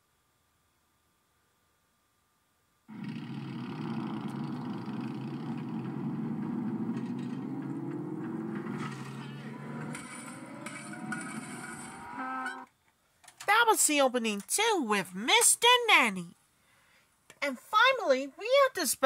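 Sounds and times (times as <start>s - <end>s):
slowly rising tones: 2.9s - 12.7s.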